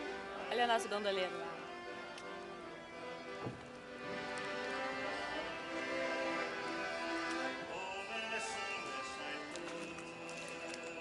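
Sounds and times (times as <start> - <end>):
serenade music with held notes: 0.0 - 11.0.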